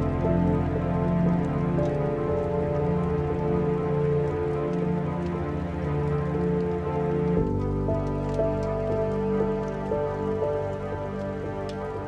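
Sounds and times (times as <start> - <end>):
rain pattering: 0.0 - 12.0
slow melancholic piano music: 0.0 - 12.0.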